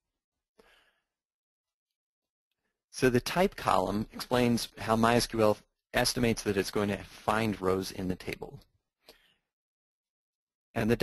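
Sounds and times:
faint breath: 0.6s - 1.2s, 9.0s - 9.6s.

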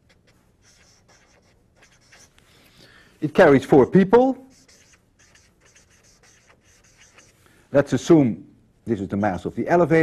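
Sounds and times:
pen scratching on paper: 0.0s - 2.4s, 3.3s - 7.4s.

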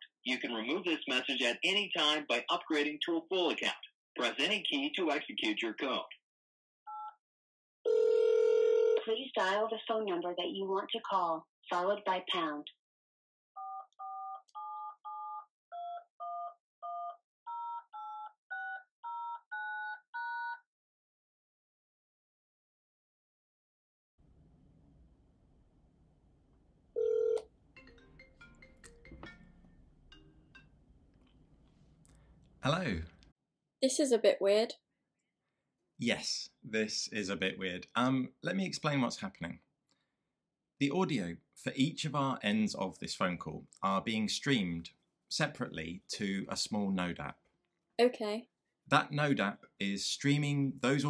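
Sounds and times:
phone ringtone melody: 7.9s - 9.0s, 13.6s - 20.6s, 27.0s - 30.7s
steady telephone tone: 7.9s - 9.0s, 27.0s - 27.5s
touch-tone keypad beep: 13.6s - 20.6s.

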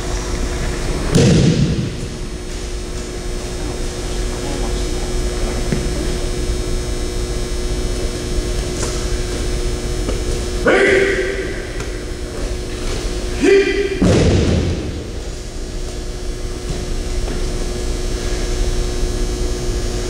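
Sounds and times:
steady hum: 0.0s - 20.0s
person shouting: 10.6s - 12.0s, 13.3s - 14.1s.

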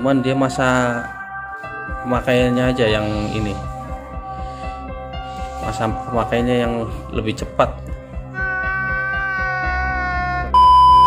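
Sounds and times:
background music: 0.0s - 11.0s
steady test-pattern beep: 10.6s - 11.0s.

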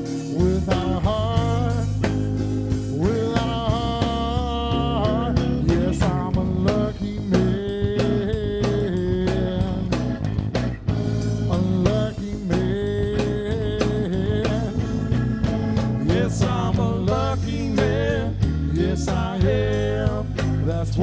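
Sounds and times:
bass guitar: 0.0s - 21.0s
drum kit: 0.0s - 21.0s
electric guitar lead: 0.0s - 21.0s.

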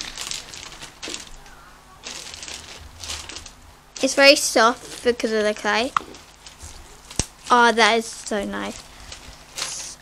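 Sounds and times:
slime crackling and squishing: 0.0s - 10.0s.

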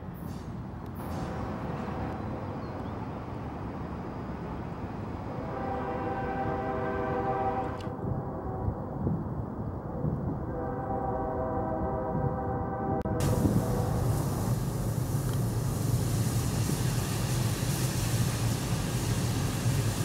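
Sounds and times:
steady rumbling noise: 0.0s - 20.0s
train horn chord: 1.2s - 2.5s, 5.3s - 9.0s, 10.4s - 14.1s.

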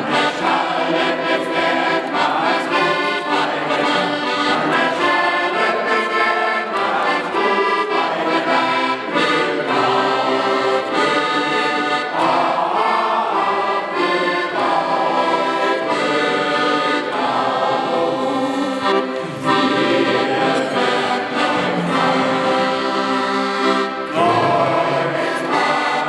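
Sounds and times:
men singing: 0.0s - 23.2s, 24.1s - 26.0s
accordion playing: 0.0s - 26.0s.

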